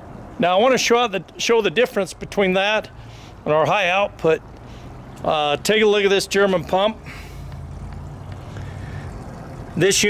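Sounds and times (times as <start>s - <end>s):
engine rumbling: 0.0s - 10.0s.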